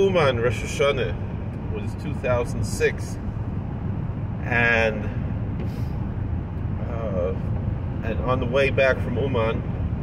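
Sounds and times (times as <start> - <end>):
car engine rumble: 0.0 - 10.0
road noise: 0.0 - 10.0.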